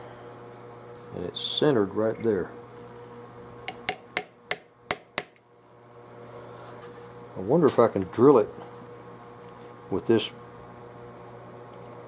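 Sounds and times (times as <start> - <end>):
steel tool tapping metal: 3.7 - 5.4.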